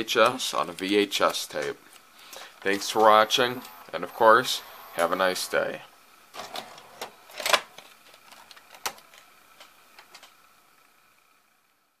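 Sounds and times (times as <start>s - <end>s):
vcr mechanical clicks and whirs: 0.0s - 11.0s.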